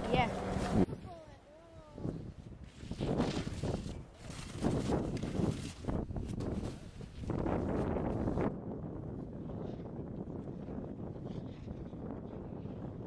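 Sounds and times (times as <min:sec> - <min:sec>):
ski edges scraping on snow: 0:02.6 - 0:08.5.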